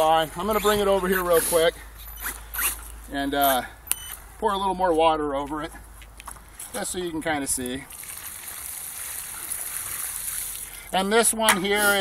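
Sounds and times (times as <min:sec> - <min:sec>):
water pouring and splashing: 0:07.9 - 0:10.9.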